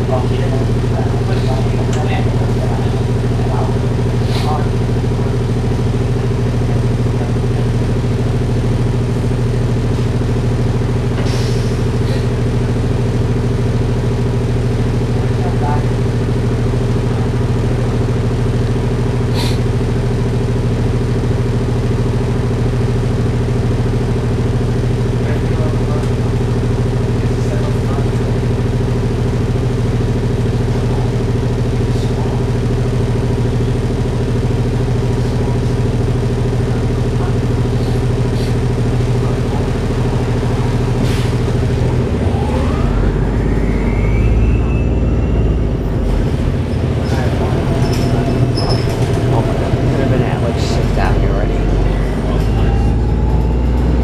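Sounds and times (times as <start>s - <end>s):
bus engine drone from inside: 0.0s - 54.0s.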